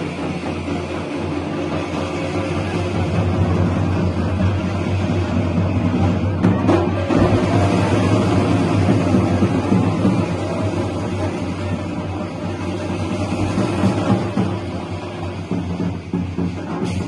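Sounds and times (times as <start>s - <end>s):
excited crowd din: 0.0s - 17.0s.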